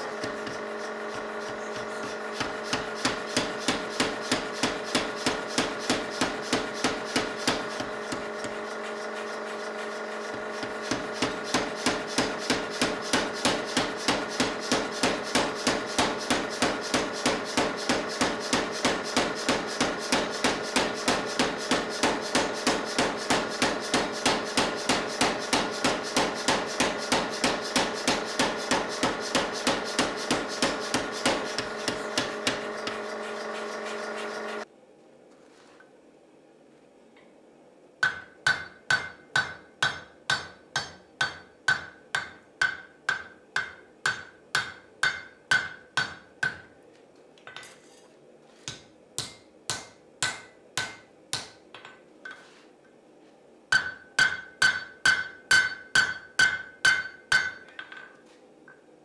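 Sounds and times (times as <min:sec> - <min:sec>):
power hammer striking hot steel: 0:00.0 - 0:34.6, 0:38.0 - 0:46.7, 0:49.2 - 0:51.6, 0:53.7 - 0:57.7.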